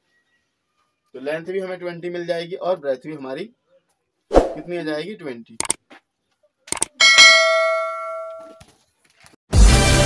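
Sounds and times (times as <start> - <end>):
quick clicks: 5.6 - 5.8, 6.7 - 7.0
bell ding: 7.0 - 8.6.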